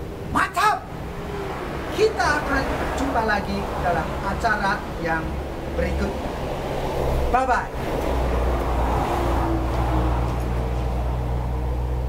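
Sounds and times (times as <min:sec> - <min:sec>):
rumble of passing cars: 0:00.0 - 0:12.0.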